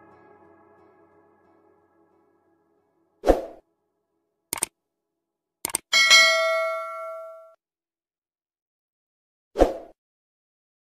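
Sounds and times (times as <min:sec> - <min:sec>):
short swoosh: 0:03.2 - 0:03.6
mouse clicks: 0:04.5 - 0:04.7, 0:05.6 - 0:05.9
bell-like notification ding: 0:06.0 - 0:07.6.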